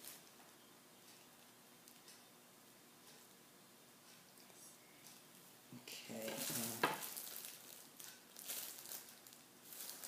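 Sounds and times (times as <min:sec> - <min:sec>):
plastic gloves crinkling: 0:00.0 - 0:00.4, 0:06.0 - 0:10.0.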